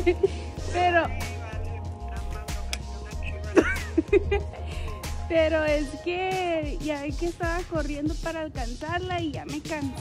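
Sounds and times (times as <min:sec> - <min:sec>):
music with heavy bass beat: 0:00.0 - 0:10.0.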